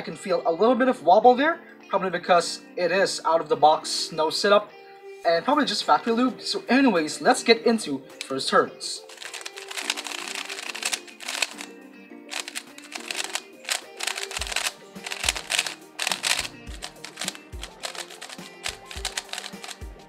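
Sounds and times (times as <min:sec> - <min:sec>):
background music: 0:00.0 - 0:20.0
speed cube clicking: 0:09.1 - 0:11.7, 0:12.3 - 0:20.0.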